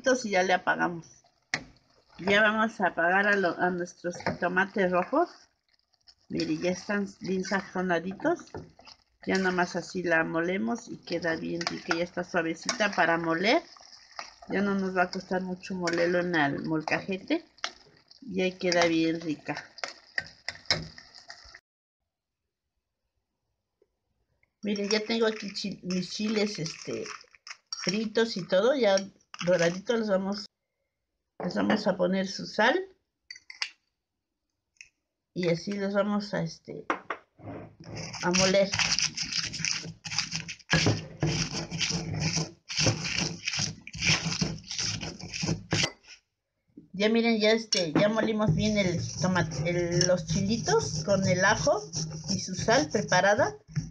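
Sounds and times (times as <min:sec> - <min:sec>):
stone pestle grinding chiles: 0:38.0 - 0:46.1, 0:48.5 - 0:53.9.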